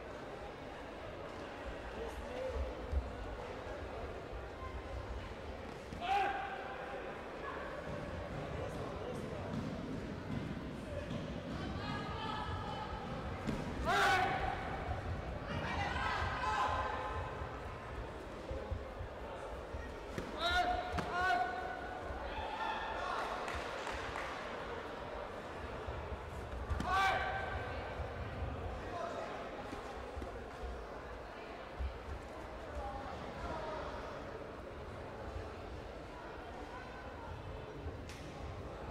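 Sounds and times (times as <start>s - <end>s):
murmur of voices in echoing hall: 0.0s - 38.9s.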